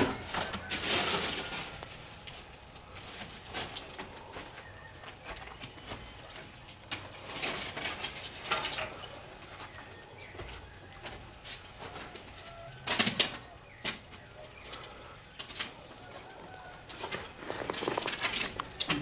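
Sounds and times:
footsteps crunching on rubble: 0.0s - 12.7s, 13.7s - 19.0s.

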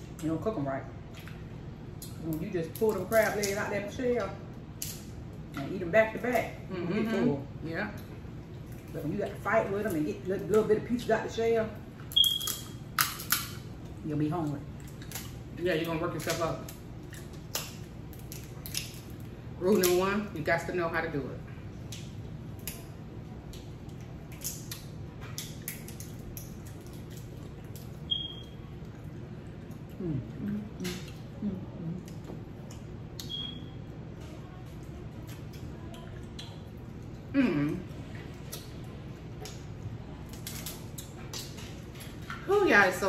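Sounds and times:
wet eating noises: 0.0s - 7.2s, 7.8s - 20.4s, 21.6s - 43.0s
steady low hum: 0.0s - 43.0s
crab shells cracking: 12.1s - 13.7s, 16.2s - 20.0s, 21.9s - 28.0s, 39.4s - 42.2s
person murmuring mm: 30.0s - 32.1s, 37.3s - 37.9s.

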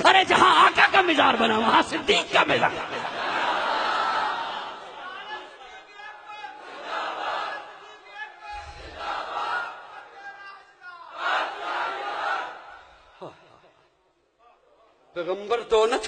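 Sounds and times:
crowd shouting together: 3.0s - 13.5s.

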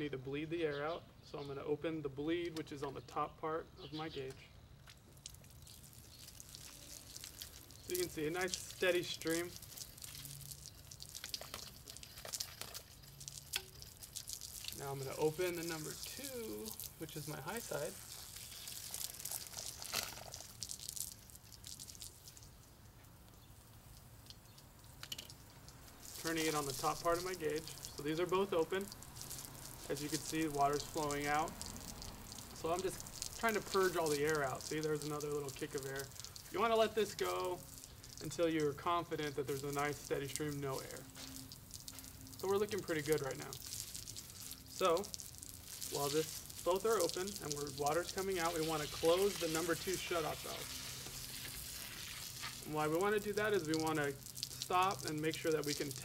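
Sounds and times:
water splashing hiss from valves: 4.9s - 56.0s.

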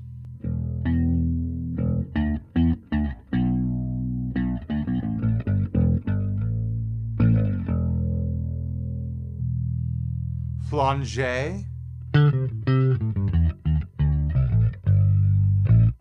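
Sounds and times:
electric bass guitar with chorus: 0.0s - 16.0s.

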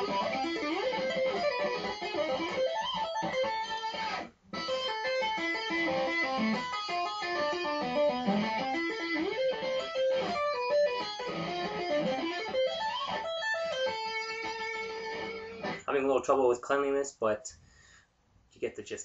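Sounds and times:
electric guitar tapping arpeggio: 0.0s - 15.9s.

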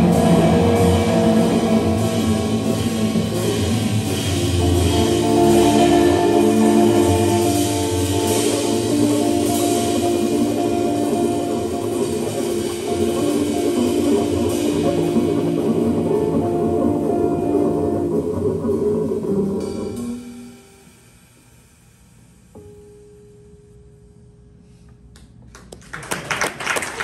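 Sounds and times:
guitar bass and drums trio: 0.0s - 20.8s.

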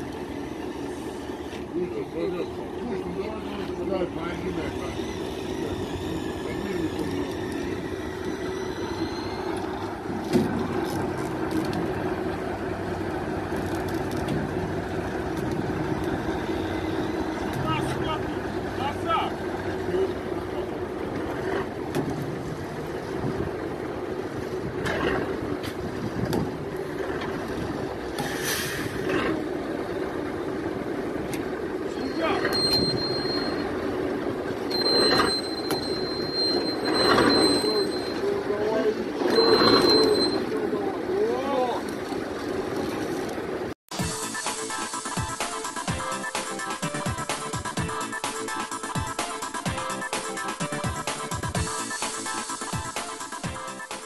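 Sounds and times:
vehicle engine running: 0.0s - 48.1s
thin high whine: 4.4s - 10.0s, 31.9s - 33.9s, 34.6s - 38.6s.

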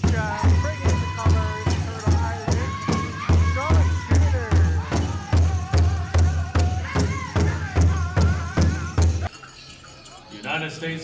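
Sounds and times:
high wavering voices singing: 0.0s - 9.3s
large drum beats: 0.0s - 9.3s.

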